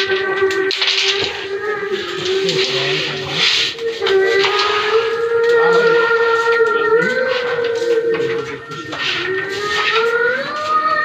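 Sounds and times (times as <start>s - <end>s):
person singing long held notes: 0.0s - 11.0s.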